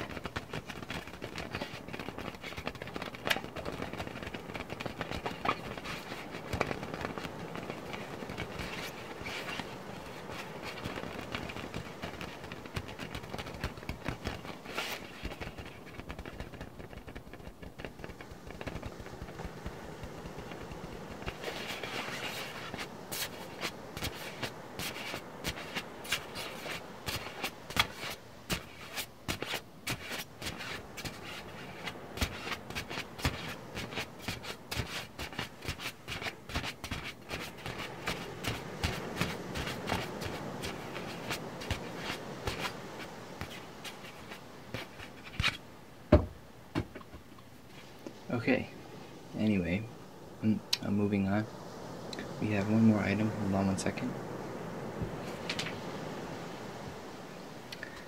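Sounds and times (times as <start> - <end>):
scratching against microphone: 0.0 - 45.6.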